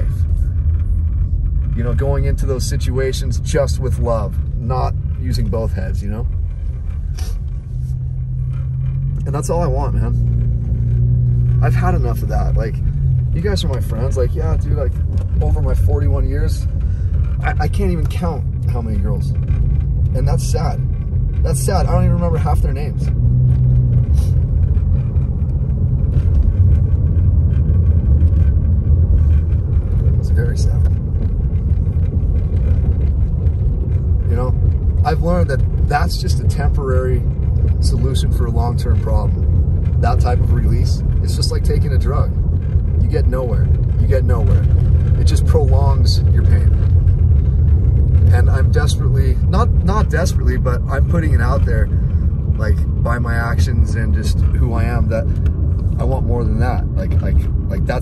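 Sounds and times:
car engine and road rumble: 0.0 - 58.0.

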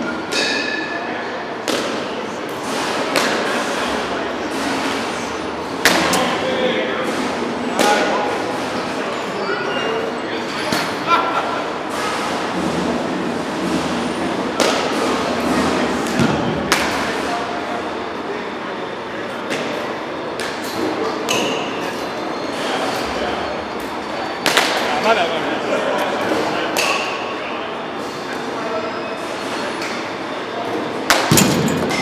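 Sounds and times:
echoing indoor hubbub: 0.0 - 32.0
bat cracking a ball: 31.1 - 32.0.

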